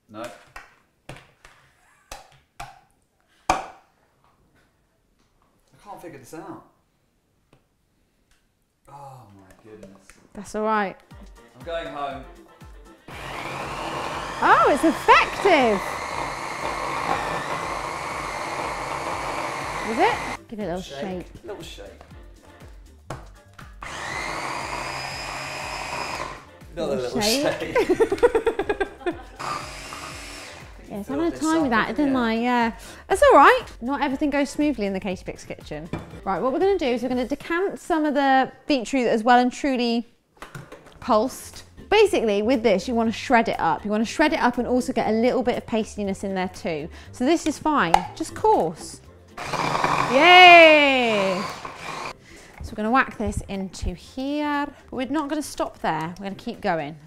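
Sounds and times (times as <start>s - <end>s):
electric chopper motor whirring: 13.1s - 20.4s, 23.8s - 26.5s, 29.4s - 30.8s, 49.4s - 50.2s, 51.0s - 52.2s.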